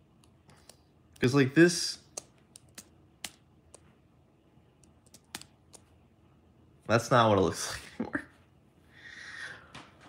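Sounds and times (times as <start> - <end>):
fingers tapping tablet: 2.1 - 3.9, 4.8 - 5.9.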